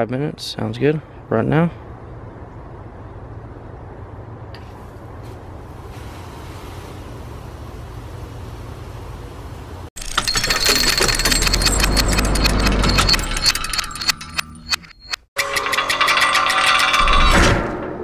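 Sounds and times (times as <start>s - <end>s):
low outdoor rumble: 0.4s - 9.9s
ringing tones: 10.0s - 17.3s
metallic clicking and ratcheting: 10.0s - 17.5s.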